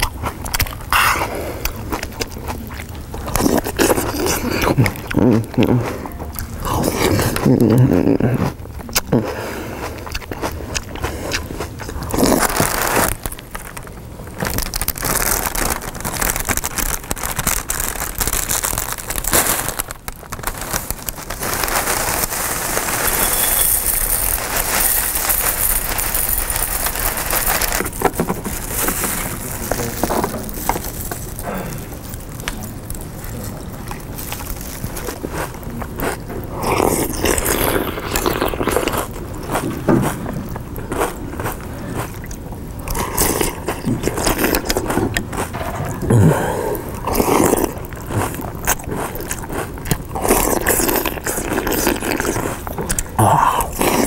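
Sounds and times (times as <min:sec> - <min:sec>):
packaging crackling and rustling: 0:00.0 - 0:09.0, 0:10.0 - 0:54.0
plastic bag crinkling: 0:00.0 - 0:09.3, 0:09.9 - 0:54.0
crunching and chewing food: 0:00.0 - 0:54.0.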